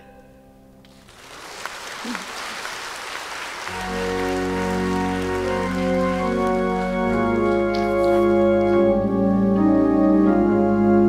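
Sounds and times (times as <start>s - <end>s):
congregation applauding: 0.9s - 9.0s
sustained organ chords: 3.6s - 11.0s.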